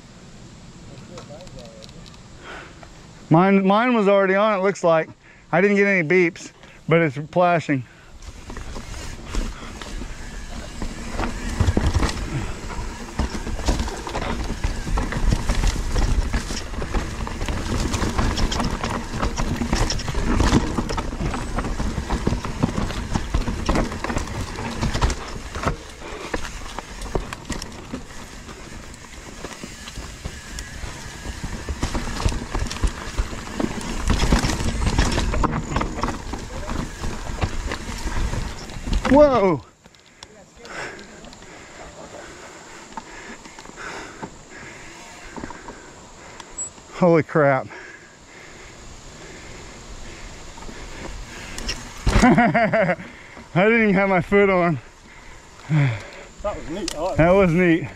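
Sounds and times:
bike rattling: 5.6 - 57.9
bike tyres clattering over rocks: 7.4 - 57.9.

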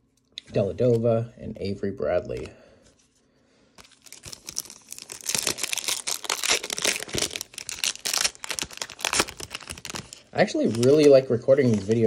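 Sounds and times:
foil wrapper crinkling and tearing: 3.8 - 12.0.

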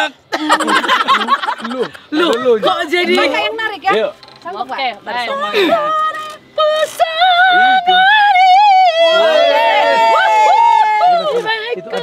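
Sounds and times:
people laughing: 0.3 - 3.2, 9.1 - 12.0.

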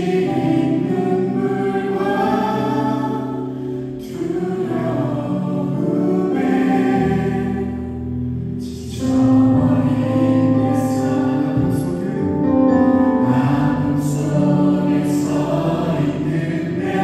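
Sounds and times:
men and women singing together: 0.0 - 7.9, 9.0 - 12.6, 13.2 - 17.0.

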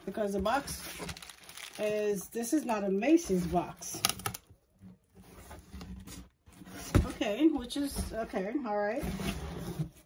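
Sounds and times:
cardboard box scraping and knocking: 5.1 - 10.0.

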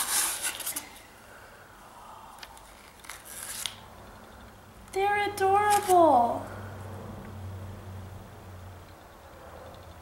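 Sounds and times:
cardboard scraping and rubbing: 0.0 - 1.0
cardboard rustling: 0.0 - 1.1.

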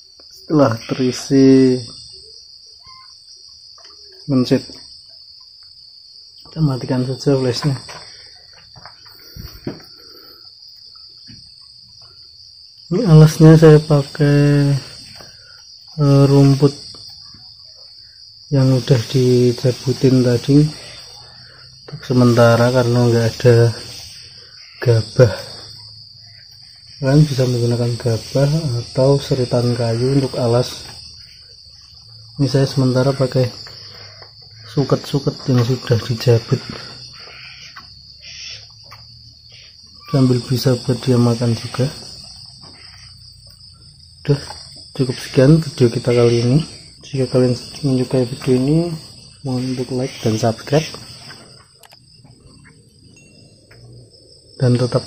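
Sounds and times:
crickets chirping: 0.0 - 55.0
faint rustles: 7.5 - 12.3.

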